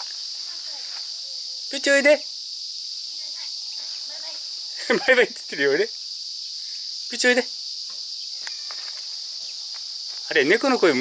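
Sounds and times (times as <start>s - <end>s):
high-pitched insect chorus: 0.0s - 11.0s
short pitched calls: 3.1s - 9.7s.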